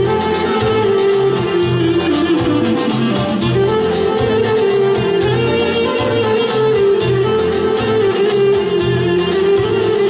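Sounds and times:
bass and rhythm beat: 0:00.0 - 0:10.0
clarinet melody: 0:00.0 - 0:10.0
keyboard: 0:00.0 - 0:10.0.

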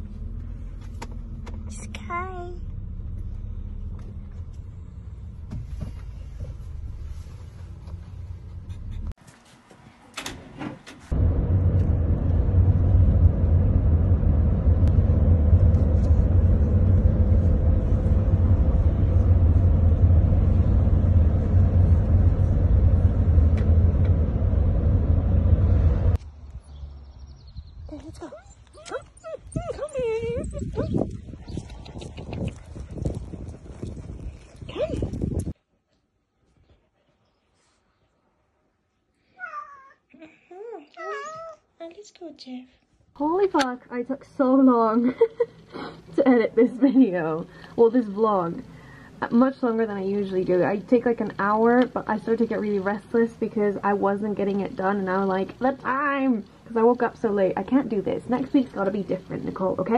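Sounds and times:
car rumble from inside cabin: 0:00.0 - 0:09.2, 0:11.1 - 0:26.2, 0:29.2 - 0:31.2
cat meowing: 0:39.4 - 0:40.0.

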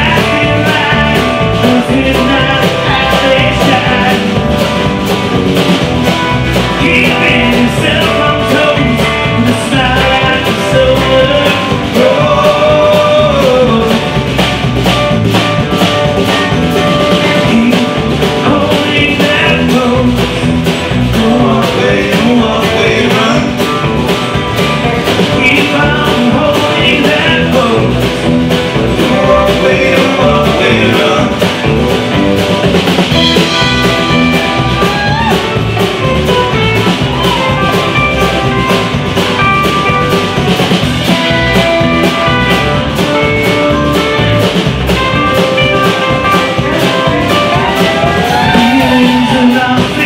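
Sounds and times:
person singing: 0:00.0 - 0:04.8, 0:06.5 - 0:14.6, 0:17.0 - 0:24.0, 0:24.9 - 0:31.8, 0:45.3 - 0:50.0
bass: 0:00.0 - 0:50.0
drum kit: 0:00.0 - 0:50.0
sliding lead guitar line: 0:00.0 - 0:50.0
strummed acoustic guitars: 0:00.0 - 0:50.0.

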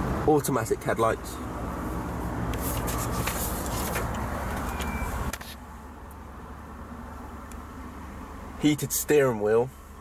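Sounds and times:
car cabin hum and hiss: 0:00.0 - 0:10.0.

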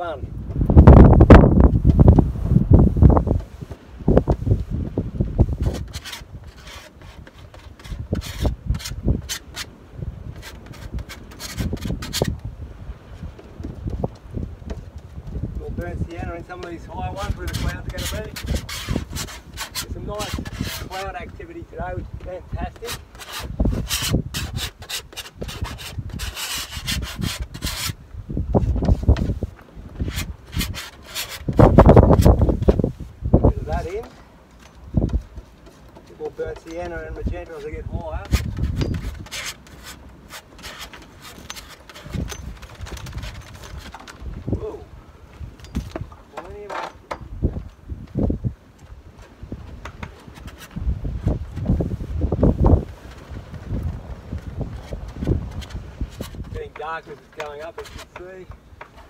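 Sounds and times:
wind buffeting microphone: 0:00.0 - 0:59.0
palette knife scraping paint: 0:05.6 - 0:09.7, 0:10.4 - 0:12.3, 0:16.6 - 0:21.1, 0:22.7 - 0:28.0, 0:30.0 - 0:32.5, 0:35.4 - 0:43.9, 0:54.8 - 0:58.3.

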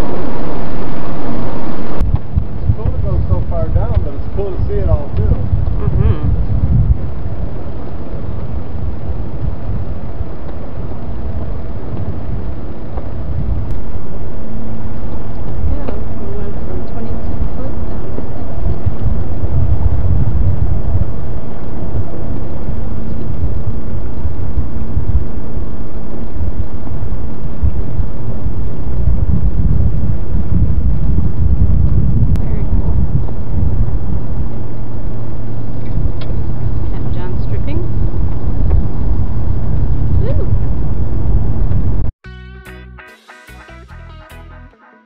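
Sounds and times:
wind buffeting microphone: 0:00.0 - 0:42.1.

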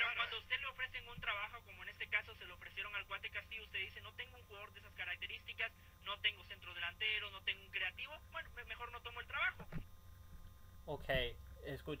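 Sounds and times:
person speaking over telephone line: 0:00.0 - 0:09.6.

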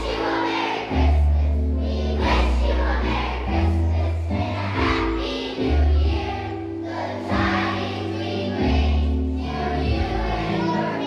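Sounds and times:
children's choir singing: 0:00.0 - 0:11.0
instrumental accompaniment: 0:00.0 - 0:11.0.

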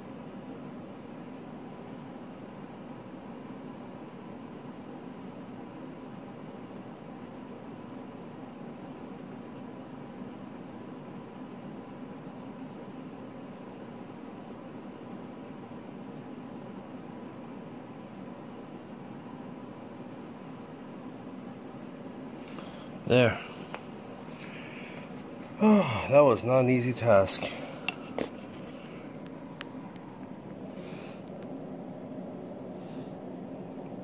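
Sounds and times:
faint constant hum: 0:00.0 - 0:34.0
background hiss: 0:19.5 - 0:33.2.

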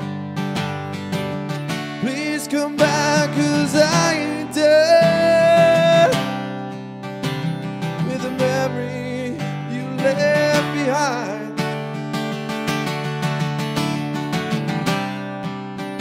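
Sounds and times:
acoustic guitar strumming: 0:00.0 - 0:16.0
man singing: 0:01.9 - 0:06.5, 0:07.8 - 0:12.0.

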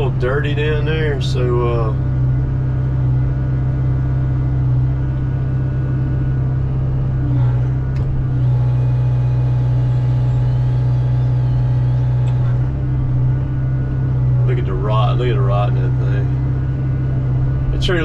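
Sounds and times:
diesel engine running under load: 0:00.0 - 0:18.0.

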